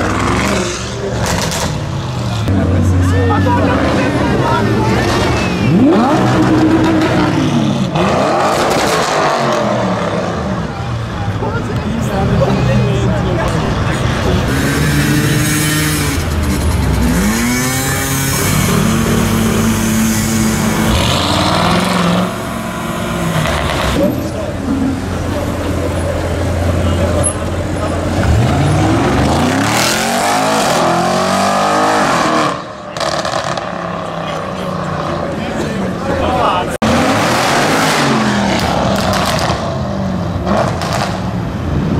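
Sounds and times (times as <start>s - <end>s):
car engine revving and accelerating: 0.0s - 10.8s, 12.1s - 35.6s, 36.7s - 41.9s.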